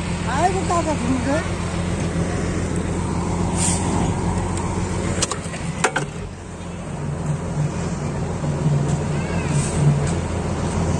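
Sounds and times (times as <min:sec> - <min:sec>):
road roller engine running: 0:00.0 - 0:10.9
brief hiss: 0:03.5 - 0:04.0.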